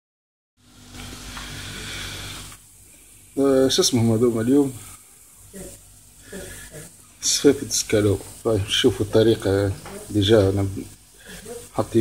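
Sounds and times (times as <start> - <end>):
skewers sizzling on grill pan: 0.7 - 12.0.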